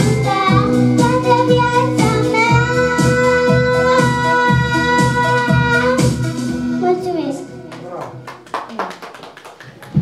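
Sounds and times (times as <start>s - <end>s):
hand clapping: 7.7s - 10.0s.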